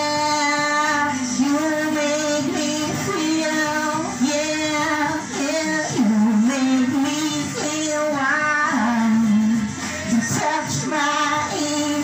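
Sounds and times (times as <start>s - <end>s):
recorded backing music: 0.0s - 12.0s
woman singing into a microphone: 0.0s - 12.0s.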